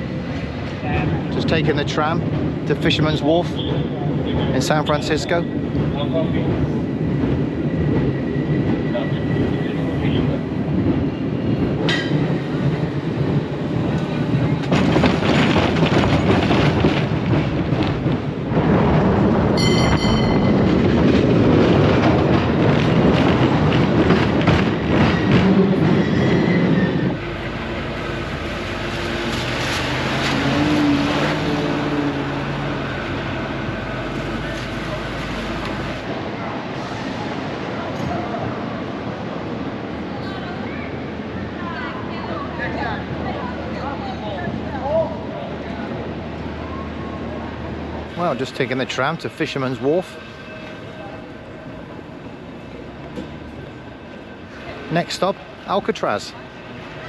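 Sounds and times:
cable car rumble and clatter: 0.0 - 57.0
ringing tone: 19.6 - 21.0.

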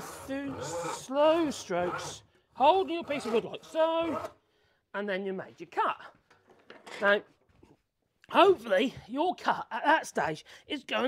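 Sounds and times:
man speaking: 0.3 - 4.3.

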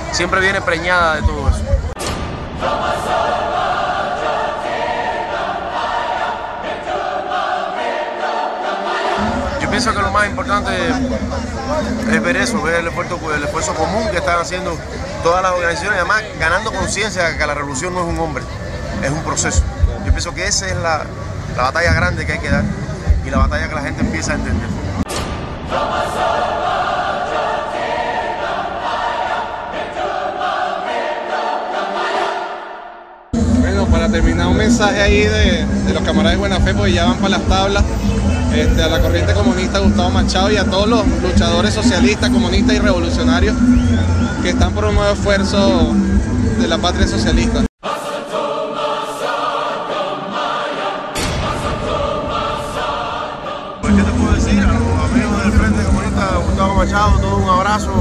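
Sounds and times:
choir singing sustained notes: 0.0 - 58.0
low rumble: 9.2 - 15.8, 18.3 - 27.3, 33.4 - 47.6
man speaking: 9.2 - 24.8, 53.8 - 58.0.

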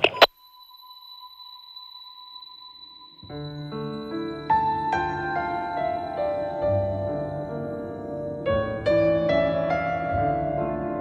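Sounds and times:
high-pitched electronic ringing tone: 0.0 - 8.3.

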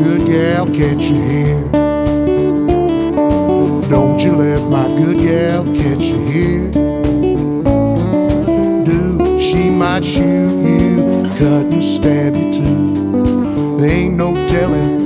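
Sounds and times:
guitars picking and strumming: 0.0 - 15.0
low bass notes: 0.0 - 15.0.

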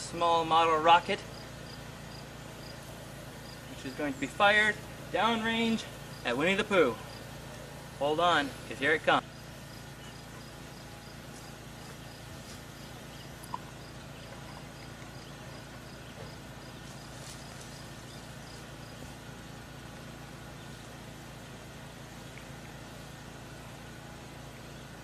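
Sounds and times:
steady low hum: 0.0 - 25.0
faint insect chirping: 1.2 - 4.5, 5.8 - 7.4, 9.2 - 19.2.

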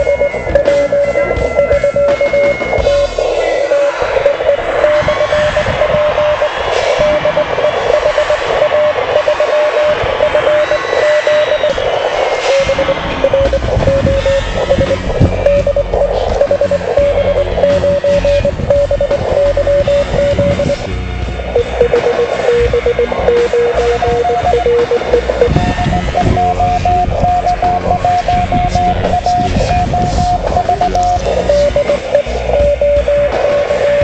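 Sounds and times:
morse code tone: 0.0 - 34.0
other radio signals: 0.0 - 34.0
shortwave radio hiss: 0.0 - 34.0.

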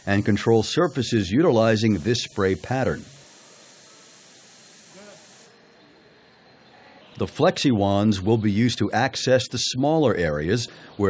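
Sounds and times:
spray wand hissing: 0.0 - 5.6.

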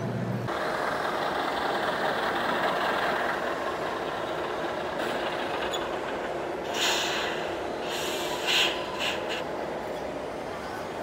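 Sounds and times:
simulated truck engine sound: 0.0 - 11.0.

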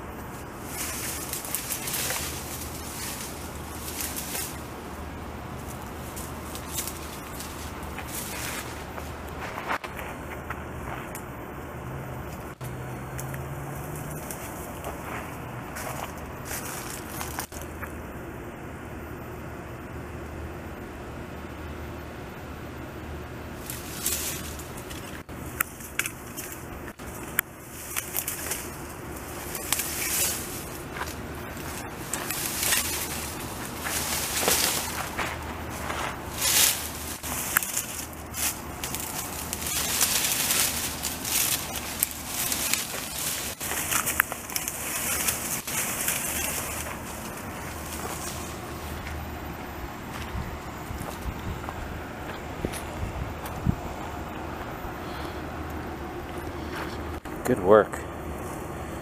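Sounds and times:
tree dragged through brush: 0.0 - 11.1, 12.2 - 17.9, 23.5 - 55.5.

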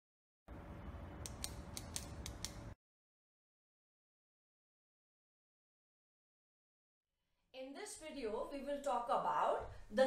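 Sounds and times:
sharp clicks: 1.2 - 2.8.

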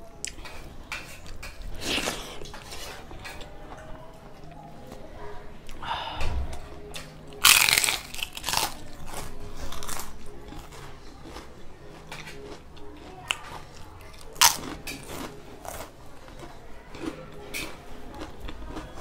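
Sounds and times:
person biting and chewing food: 1.1 - 3.5, 6.8 - 19.0.

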